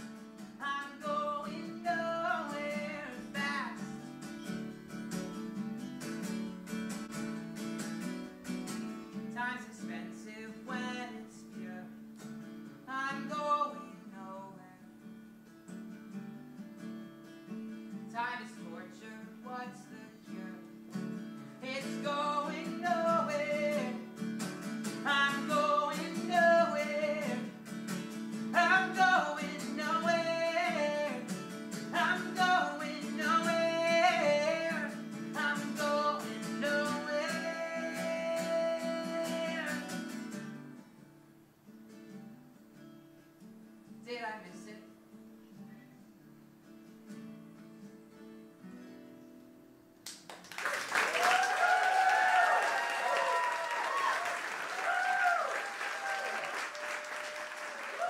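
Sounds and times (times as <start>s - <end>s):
acoustic guitar: 0.0s - 50.6s
man singing: 0.6s - 4.0s, 9.3s - 12.0s, 12.9s - 14.9s, 18.1s - 20.7s, 21.6s - 24.1s, 25.0s - 27.6s, 28.4s - 40.2s.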